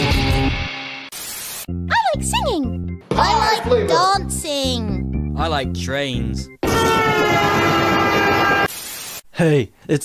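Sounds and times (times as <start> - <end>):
train horn blaring: 6.6 - 8.7.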